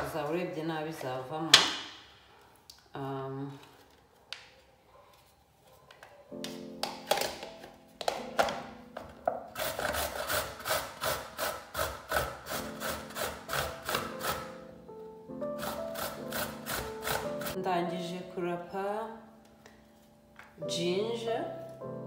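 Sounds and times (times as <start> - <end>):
ginger rasping on metal grater: 9.6 - 14.6, 15.6 - 17.6.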